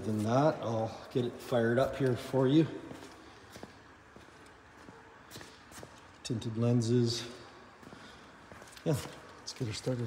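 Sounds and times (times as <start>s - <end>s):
footsteps on concrete: 0.0s - 6.5s, 7.2s - 10.0s.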